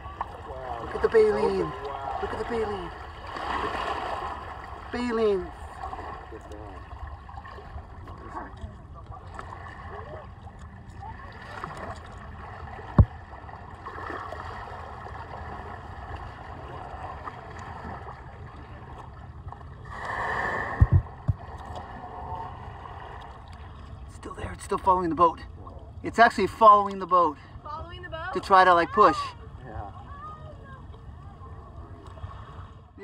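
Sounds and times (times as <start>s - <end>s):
water sloshing against boat hull: 0.0s - 33.0s
steady low rumble: 14.6s - 26.1s.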